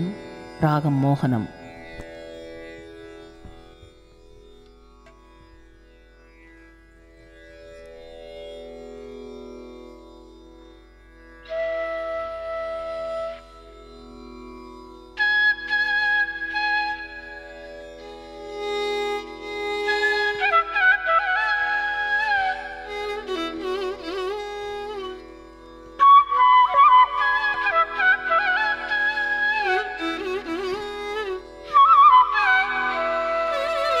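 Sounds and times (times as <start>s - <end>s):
tanpura drone: 0.0s - 34.0s
bamboo flute melody: 11.4s - 13.8s, 15.2s - 34.0s.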